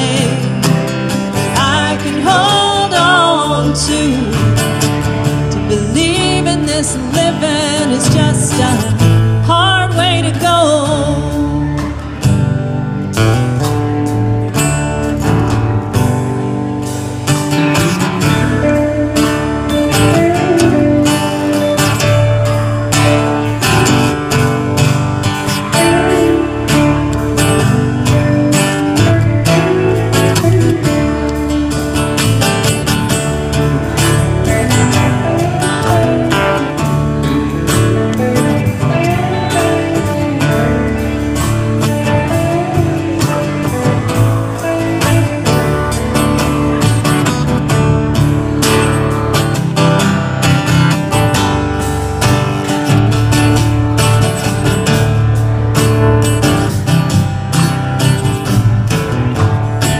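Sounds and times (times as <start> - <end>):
acoustic guitar strumming: 0.0 - 59.9
electric bass: 0.0 - 59.9
electric guitar: 0.0 - 59.9
drum kit beat: 7.0 - 59.9.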